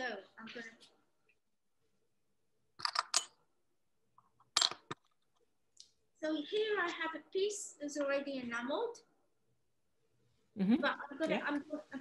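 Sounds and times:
small objects clicking and knocking: 2.8s - 3.4s, 4.2s - 5.5s.

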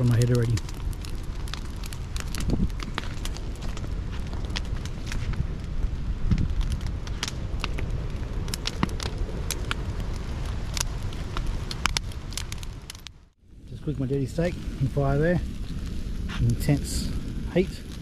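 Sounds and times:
fire low rumble: 0.0s - 18.0s
wood fire crackling and popping: 0.0s - 18.0s.

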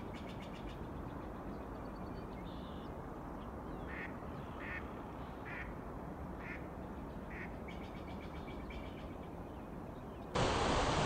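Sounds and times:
waterfall rushing: 10.4s - 11.0s.

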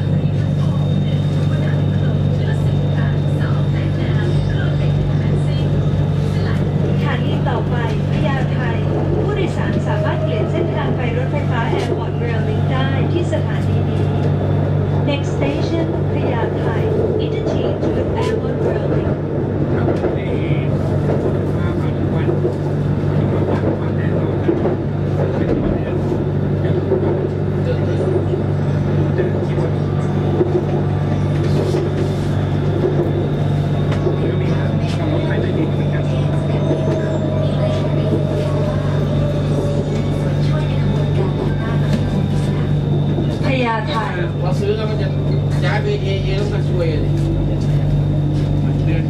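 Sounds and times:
train hum and rumble: 0.0s - 49.0s.

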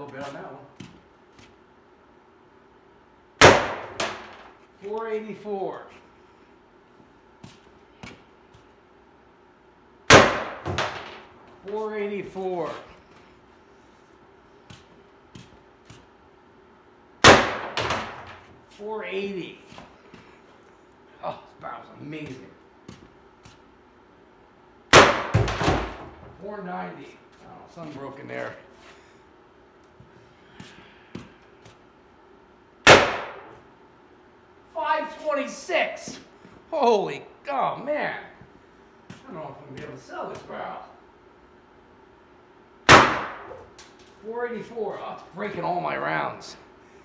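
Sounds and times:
launcher firing sharp shot: 3.4s - 4.4s, 10.1s - 11.3s, 17.2s - 18.4s, 24.9s - 26.1s, 32.8s - 33.6s, 42.9s - 43.6s.

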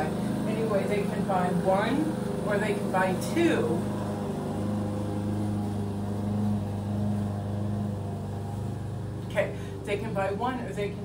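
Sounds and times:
lawn mower engine running: 0.0s - 11.0s.

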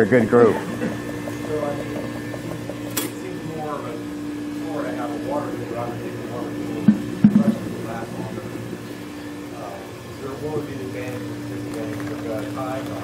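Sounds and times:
low voices talking: 0.0s - 8.8s
machine hum: 0.0s - 13.0s
sharp knocks: 6.8s - 7.6s.

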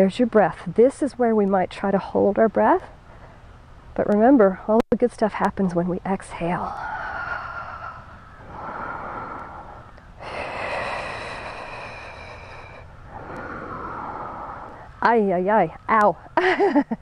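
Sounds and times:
woman breathing hard: 6.7s - 14.9s.

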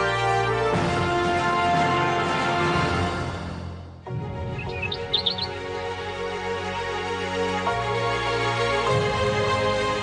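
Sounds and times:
soft music: 0.0s - 10.0s
birdsong chirps: 4.4s - 5.8s.

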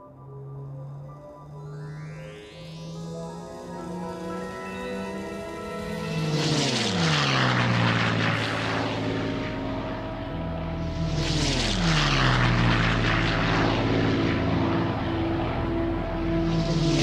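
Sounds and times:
continuous engine drone: 0.0s - 17.0s
propeller aircraft flying past: 0.0s - 17.0s.

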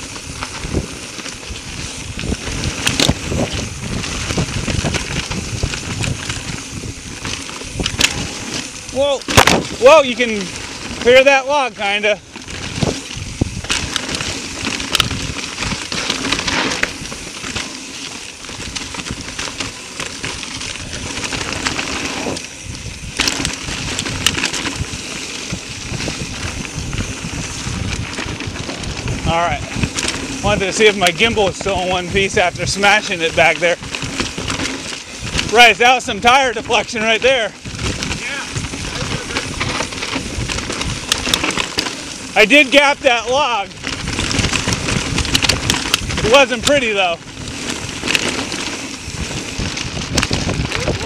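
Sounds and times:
bike rattling over bumps: 0.0s - 51.0s
bike tyres crunching through leaves: 0.0s - 51.0s.

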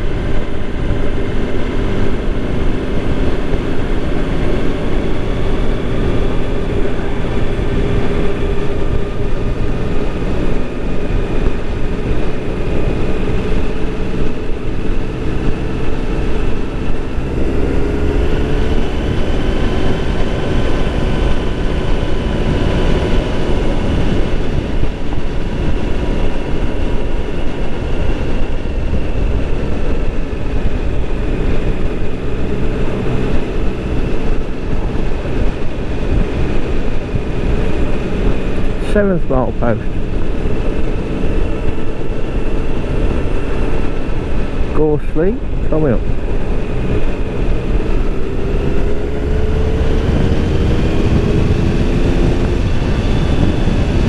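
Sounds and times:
road and wind noise: 0.0s - 54.0s
vehicle engine cruising: 0.0s - 54.0s.

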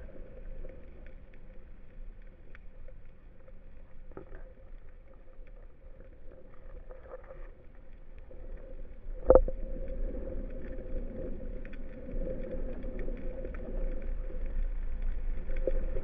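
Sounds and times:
faint steady hum: 0.0s - 16.0s
low underwater rumble: 0.0s - 16.0s.

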